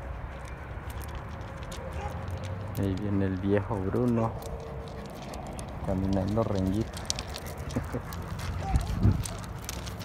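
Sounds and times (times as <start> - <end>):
footsteps crunching on gravel: 0.0 - 10.0.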